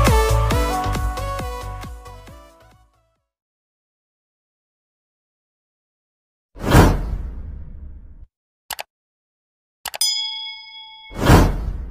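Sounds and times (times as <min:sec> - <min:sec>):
bright bell ding: 0:10.0 - 0:11.6.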